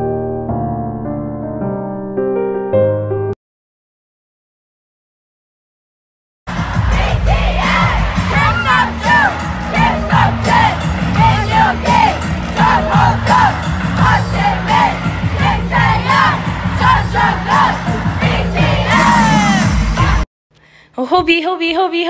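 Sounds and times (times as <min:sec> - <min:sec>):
music: 0:00.0 - 0:03.4, 0:06.5 - 0:20.3
crowd screaming and cheering: 0:06.5 - 0:20.2.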